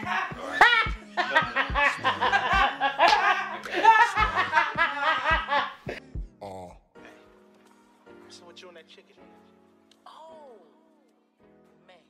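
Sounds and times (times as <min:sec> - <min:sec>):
woman laughing: 0:00.0 - 0:05.9.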